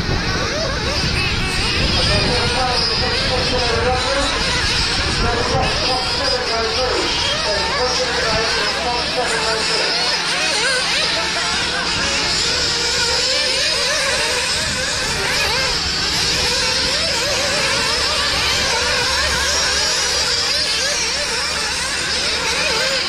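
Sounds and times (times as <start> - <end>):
rc car engines revving: 0.0 - 23.0.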